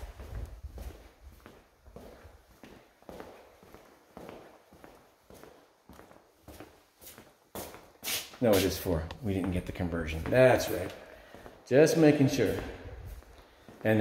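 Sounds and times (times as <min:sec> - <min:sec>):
footsteps on tile floor: 0:00.0 - 0:14.0.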